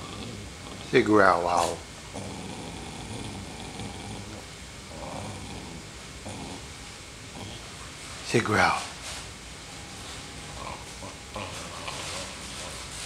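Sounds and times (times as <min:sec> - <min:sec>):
dog growling softly: 0:00.0 - 0:09.0, 0:09.7 - 0:13.0.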